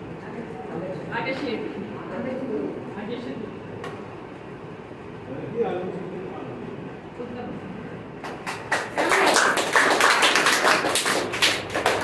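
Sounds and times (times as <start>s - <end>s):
people clapping: 8.2s - 12.0s.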